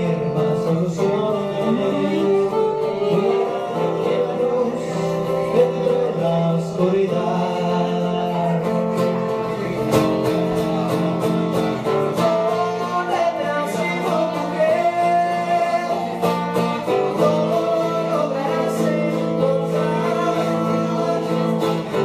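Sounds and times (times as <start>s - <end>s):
man singing: 0.0s - 22.0s
strummed acoustic guitar: 0.0s - 22.0s.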